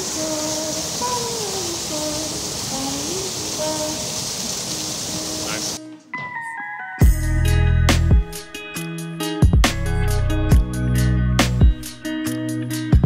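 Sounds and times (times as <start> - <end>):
rushing water: 0.0 - 5.8
plucked notes: 5.8 - 12.1.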